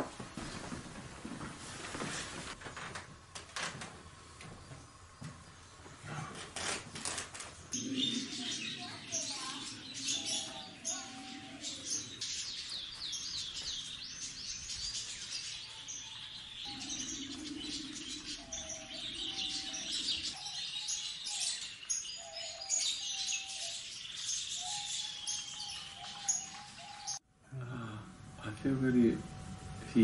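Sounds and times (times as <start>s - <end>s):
small birds chirping: 7.5s - 27.9s.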